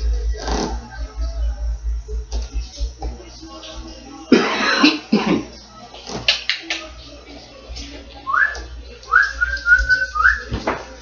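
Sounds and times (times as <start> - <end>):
faint background music: 0.0 - 11.0
person coughing: 4.3 - 5.5.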